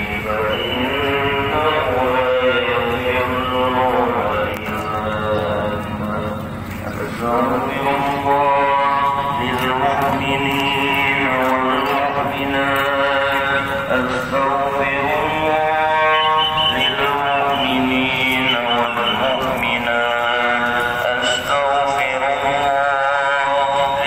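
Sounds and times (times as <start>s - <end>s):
person chanting a prayer: 0.0s - 24.0s.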